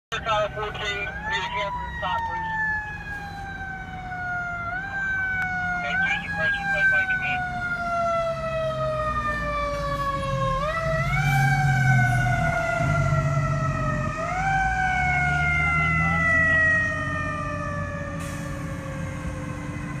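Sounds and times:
fire truck siren wailing: 0.1 - 20.0
truck engine rumbling: 0.1 - 20.0.

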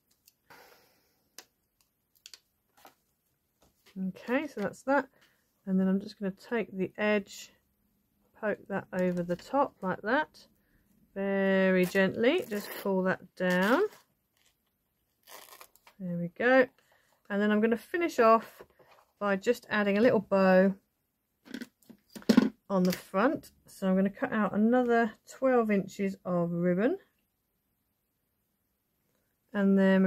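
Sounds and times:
soft paper rustle: 2.1 - 4.4.

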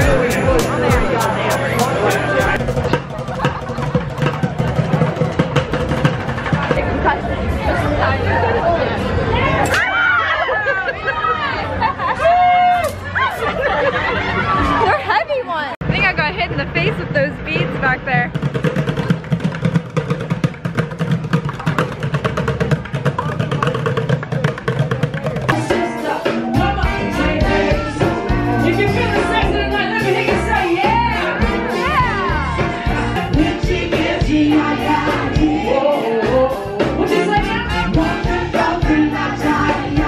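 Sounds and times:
low street rumble: 0.0 - 25.8.

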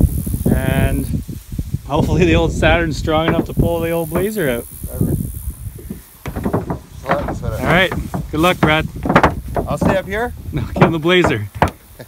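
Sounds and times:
grass rustling: 0.0 - 12.0
low rumbling: 2.1 - 11.6
soft knocks: 3.0 - 4.6, 5.8 - 11.9.

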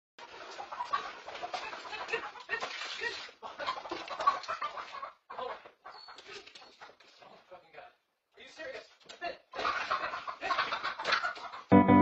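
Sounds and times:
chicken clucking: 0.2 - 2.8, 3.4 - 7.5, 9.5 - 12.0.

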